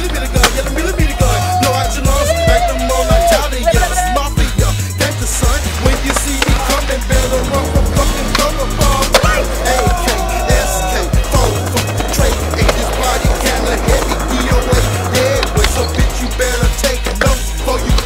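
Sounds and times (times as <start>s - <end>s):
skateboard clacks: 0.0s - 4.0s, 5.0s - 18.0s
hip-hop backing track: 0.0s - 18.0s
skateboard wheels rolling: 0.0s - 18.0s.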